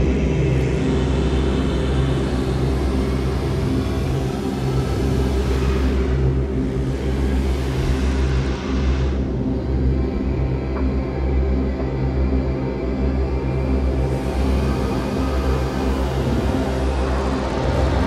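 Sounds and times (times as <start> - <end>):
low electronic drone tones: 0.0 - 18.0.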